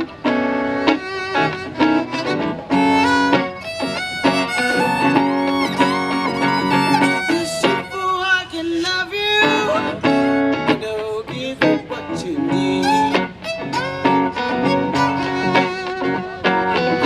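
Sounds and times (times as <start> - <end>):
violin solo with sliding notes: 0.0 - 8.6, 11.6 - 17.0
plucked guitar: 0.0 - 17.0.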